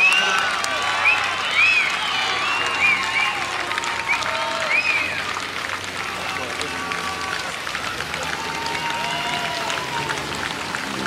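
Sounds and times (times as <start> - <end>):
crowd noise: 0.0 - 11.0
spectators shouting and clapping: 0.0 - 11.0
high-pitched yells: 8.2 - 10.1.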